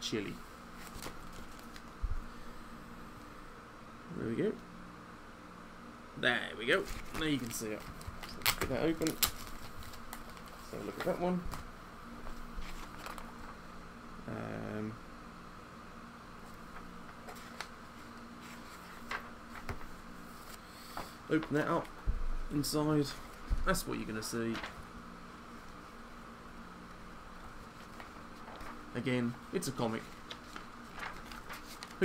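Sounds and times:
low room hum: 0:00.0 - 0:32.0
paper rustling and crinkling: 0:00.8 - 0:02.0, 0:06.8 - 0:13.6, 0:16.4 - 0:21.9, 0:23.0 - 0:24.9, 0:27.4 - 0:32.0.

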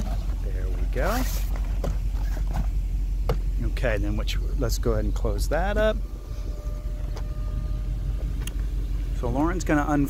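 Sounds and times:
low rumble: 0:00.0 - 0:10.0
electric motor whining: 0:05.7 - 0:08.8.

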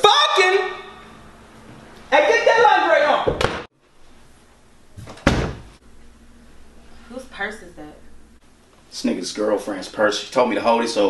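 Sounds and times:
door shutting thud: 0:05.0 - 0:05.8.

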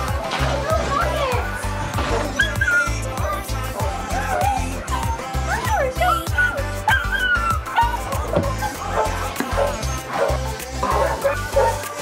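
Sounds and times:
music with a steady beat: 0:00.0 - 0:12.0
puppies yipping and whimpering: 0:02.1 - 0:03.2, 0:04.1 - 0:11.8.

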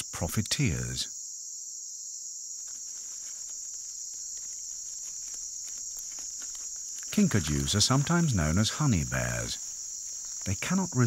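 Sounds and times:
night insects chirring: 0:00.0 - 0:11.0
faint ticks and rustles: 0:02.5 - 0:11.0.

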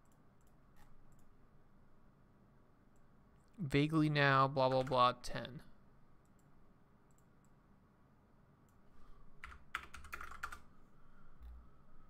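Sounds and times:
keyboard keystrokes: 0:09.4 - 0:10.6.

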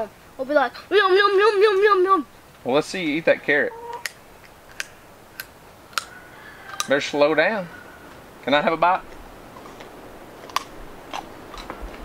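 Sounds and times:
child chewing raw carrot: 0:09.6 - 0:12.0.

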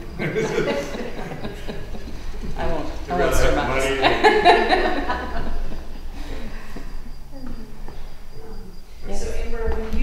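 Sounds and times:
murmur of voices: 0:00.0 - 0:04.7
cricket trilling: 0:00.0 - 0:10.0.

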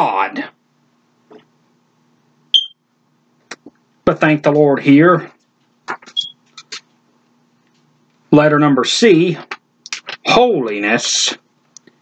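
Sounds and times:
faint steady hum: 0:00.0 - 0:12.0
short high-pitched beep: 0:02.6 - 0:02.8, 0:06.1 - 0:06.4.

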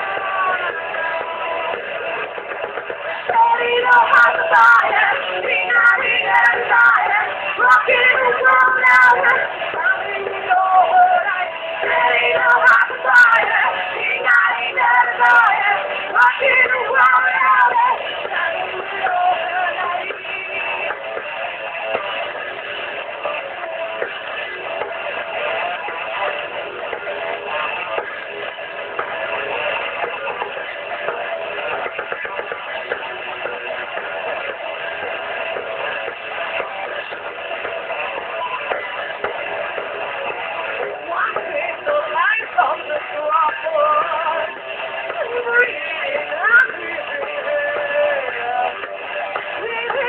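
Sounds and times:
drums: 0:00.0 - 0:50.0.

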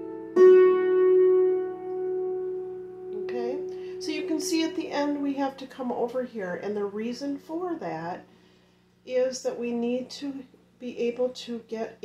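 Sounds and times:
hammered dulcimer notes ringing: 0:00.0 - 0:05.2
woman talking: 0:03.2 - 0:08.3, 0:09.0 - 0:12.0.

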